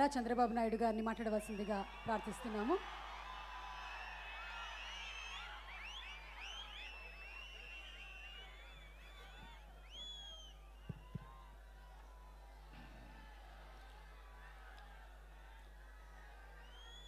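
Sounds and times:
crowd cheering: 0:00.2 - 0:17.0
crowd whistling: 0:00.8 - 0:15.0, 0:16.0 - 0:17.0.

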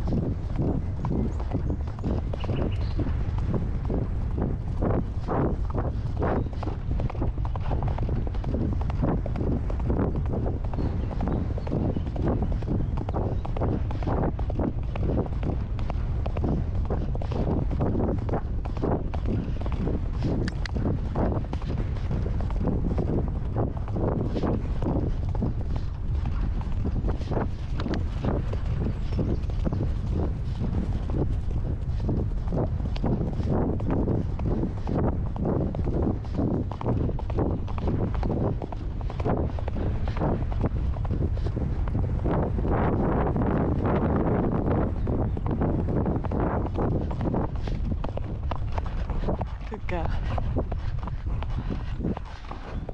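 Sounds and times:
horse hooves on grass: 0:00.0 - 0:52.9
wind rumbling on microphone: 0:00.0 - 0:52.9.

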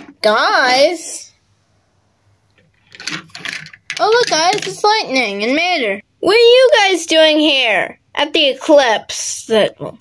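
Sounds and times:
toy cars clicking and clattering: 0:02.9 - 0:05.0.

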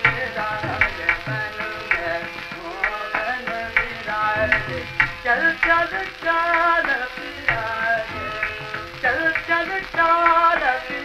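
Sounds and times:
man singing ornamented phrases: 0:00.0 - 0:11.0
tabla strokes: 0:00.0 - 0:11.0.

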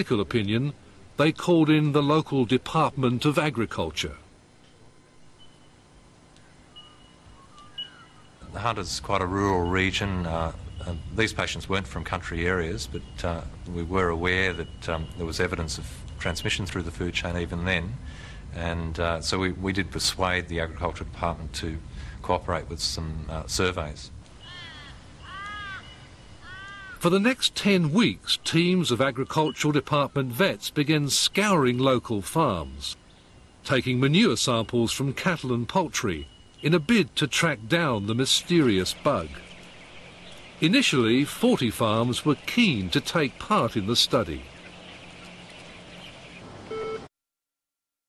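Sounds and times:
steady low hum: 0:00.0 - 0:46.9
crow cawing: 0:24.4 - 0:27.0.

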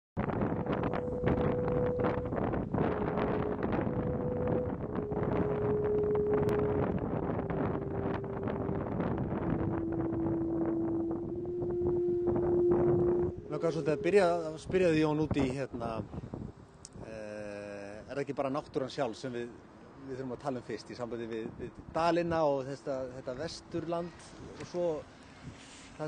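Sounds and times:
wind buffeting microphone: 0:00.2 - 0:17.1
thin held tone notes: 0:00.6 - 0:15.0.

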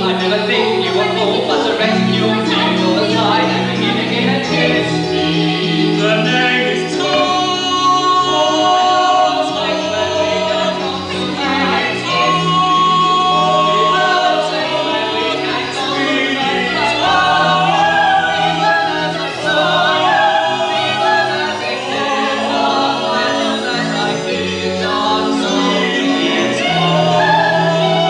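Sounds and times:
group singing held notes: 0:00.0 - 0:28.0
instrumental accompaniment: 0:00.0 - 0:28.0.

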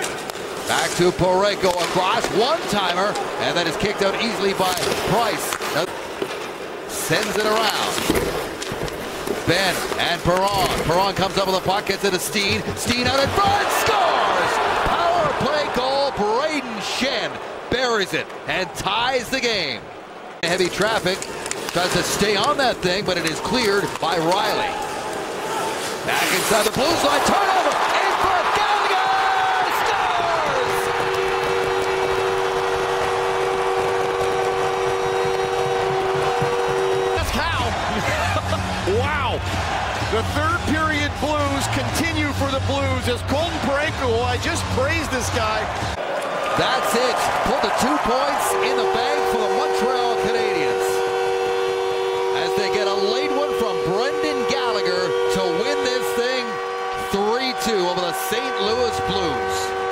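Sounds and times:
crowd cheering: 0:00.0 - 0:59.9
two-note goal horn blast: 0:12.2 - 0:15.4, 0:29.6 - 0:45.9, 0:48.3 - 0:59.9
music over arena speakers: 0:34.7 - 0:46.0.

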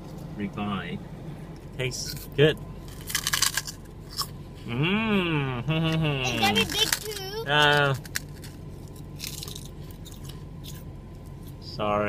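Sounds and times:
steady low hum: 0:00.0 - 0:12.0
prawn crackers crunching: 0:02.0 - 0:04.4, 0:06.4 - 0:11.6.

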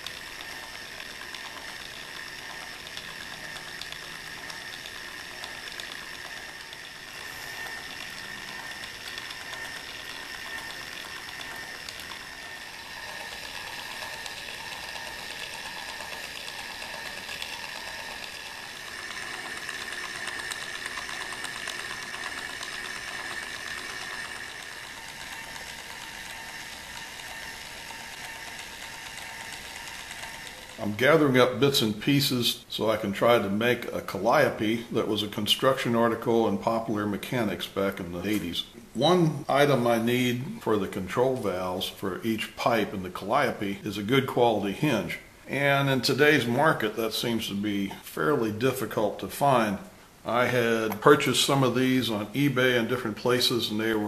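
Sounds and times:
small motor humming with ticking: 0:00.0 - 0:54.0.

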